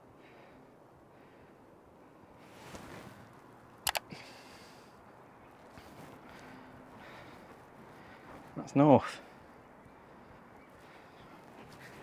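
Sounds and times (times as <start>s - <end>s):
faint rustle: 0.2s - 12.0s
sharp clicks: 3.8s - 4.1s.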